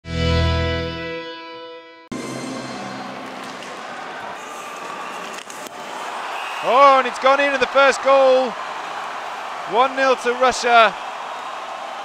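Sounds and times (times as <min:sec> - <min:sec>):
deep musical sting: 0:02.1 - 0:04.2
arena crowd noise: 0:02.2 - 0:12.0.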